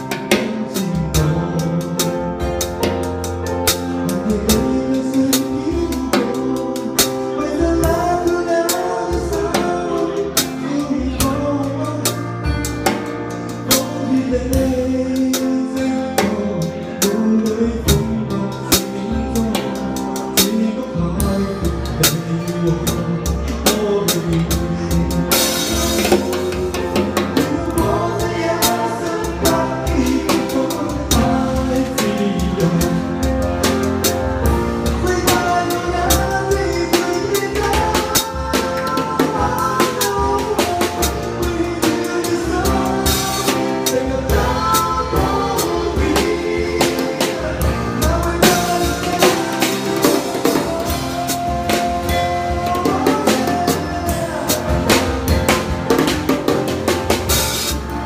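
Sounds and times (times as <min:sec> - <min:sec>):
drum kit playing: 0:00.0 - 0:58.0
recorded song: 0:00.0 - 0:58.0.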